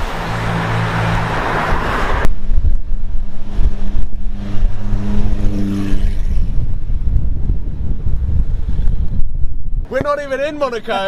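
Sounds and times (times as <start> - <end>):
road and wind rumble: 0.0 - 11.0.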